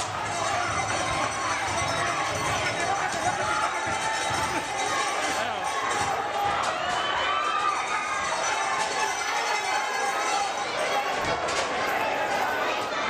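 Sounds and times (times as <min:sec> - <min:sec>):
crowd shouting and talking: 0:00.0 - 0:13.0.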